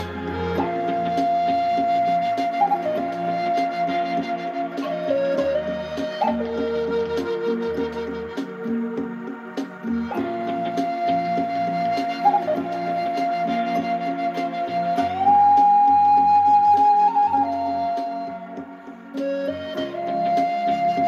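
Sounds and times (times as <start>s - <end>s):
wooden flute melody: 0.0s - 21.0s.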